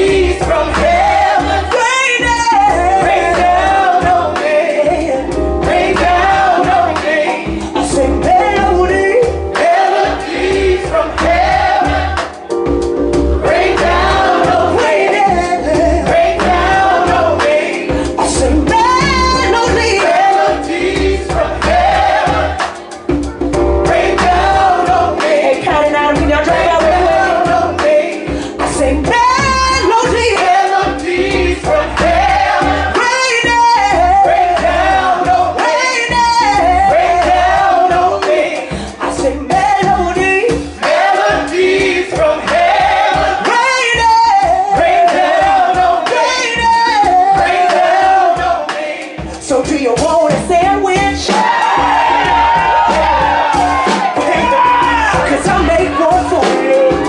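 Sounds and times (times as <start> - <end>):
bass and drums: 0.0 - 57.0
singers singing in gospel style: 0.0 - 57.0.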